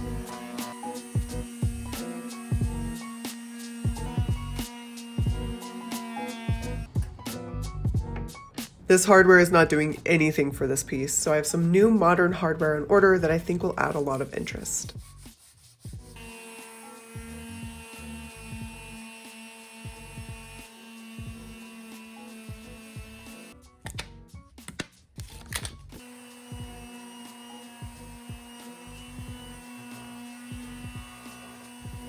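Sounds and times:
electric sander on wood: 0:00.0 - 0:06.9, 0:15.4 - 0:23.6, 0:26.0 - 0:32.0
background music: 0:00.0 - 0:32.0.

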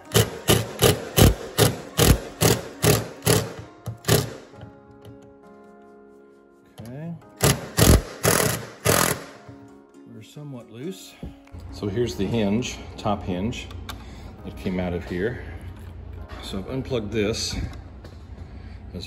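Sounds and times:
impact driver bursts: 0:00.0 - 0:04.5, 0:07.4 - 0:09.4.

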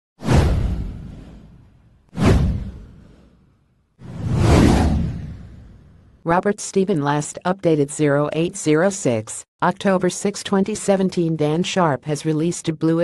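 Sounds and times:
whoosh sound effects: 0:04.0 - 0:06.0.

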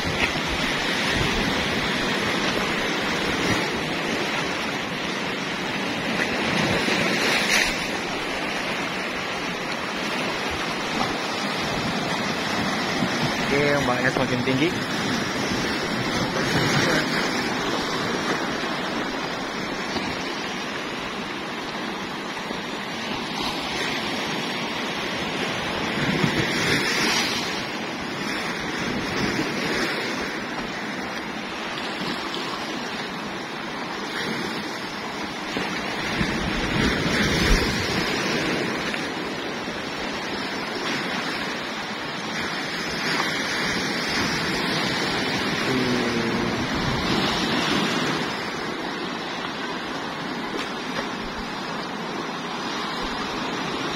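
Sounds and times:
sea surf breaking on rocks: 0:00.0 - 0:53.9.

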